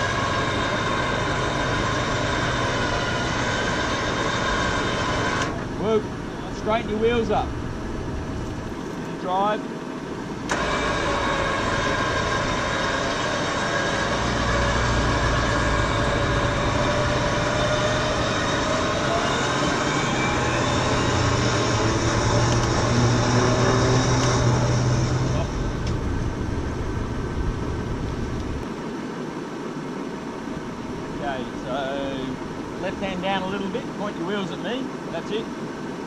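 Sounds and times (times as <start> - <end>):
electric winch whining: 0.0 - 6.7, 10.4 - 28.5
low engine drone: 0.0 - 36.0.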